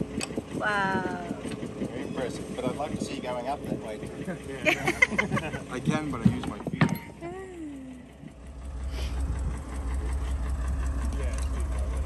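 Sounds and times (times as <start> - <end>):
crane engine idling: 0.0 - 12.0.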